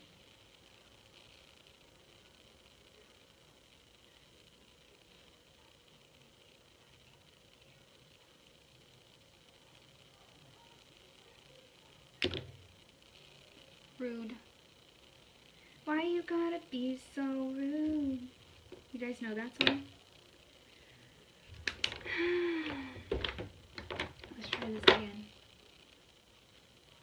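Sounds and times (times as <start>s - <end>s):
faint hiss: 0.0s - 27.0s.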